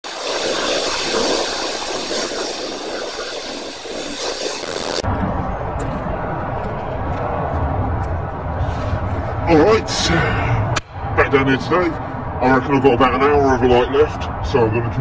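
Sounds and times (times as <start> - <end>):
wind on microphone: 0.0 - 9.8.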